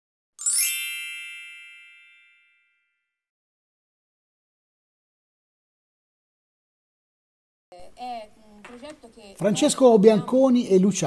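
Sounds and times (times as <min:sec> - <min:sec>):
bright chime with sparkle: 0:00.4 - 0:03.0.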